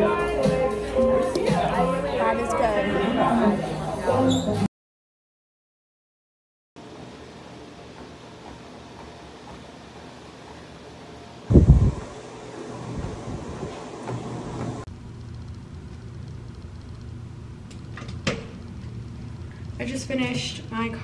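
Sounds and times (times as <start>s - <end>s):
treadmill humming: 6.8s - 17.8s.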